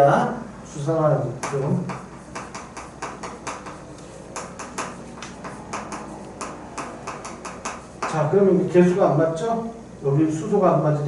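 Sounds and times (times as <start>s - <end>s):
chalk tapping on chalkboard: 1.3s - 8.4s.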